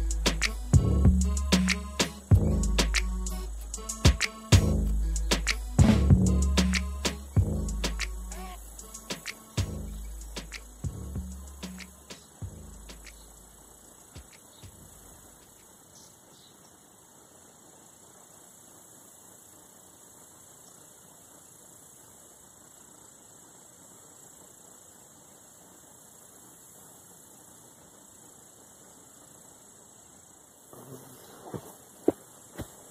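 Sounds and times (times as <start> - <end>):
faint hiss: 0.0 - 32.9.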